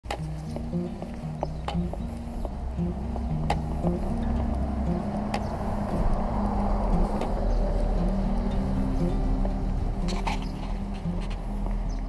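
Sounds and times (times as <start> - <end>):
street traffic rumble: 0.1 - 12.0
vehicle passing: 0.3 - 12.0.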